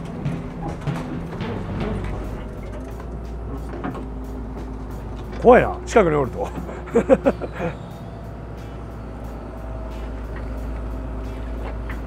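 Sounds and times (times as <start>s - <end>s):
excavator diesel engine drone: 0.0s - 12.0s.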